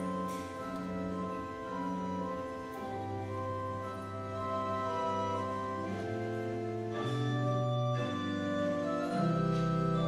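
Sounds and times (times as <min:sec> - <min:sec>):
slow sustained instrumental chords: 0:00.0 - 0:10.0.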